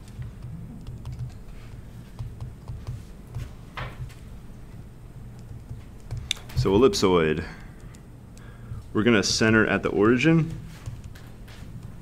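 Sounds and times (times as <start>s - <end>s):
stylus tapping on tablet screen: 0.2s - 4.2s, 10.7s - 12.0s.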